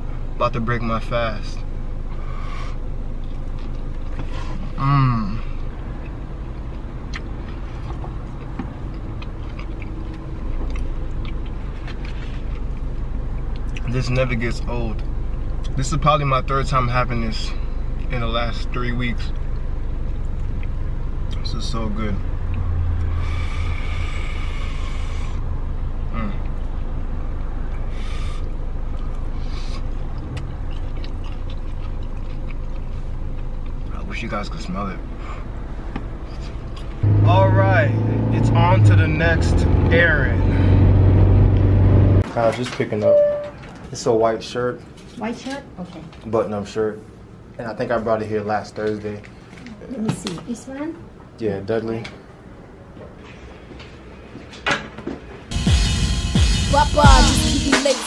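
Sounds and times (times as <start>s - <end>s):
car engine idling: 0.0s - 42.2s
faint chewing: 3.1s - 4.8s, 5.6s - 13.9s, 27.7s - 34.0s
man humming mmm: 4.8s - 5.5s, 26.1s - 26.5s.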